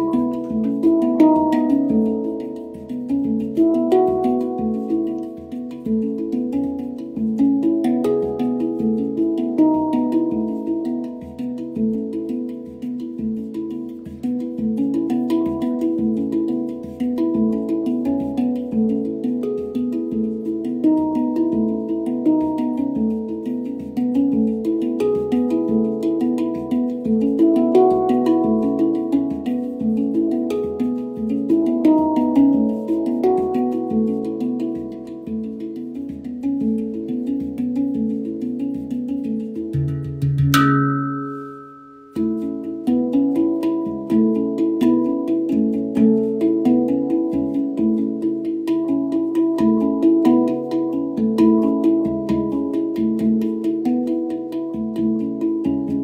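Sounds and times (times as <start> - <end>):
handpan ringing notes: 0.0 - 56.0.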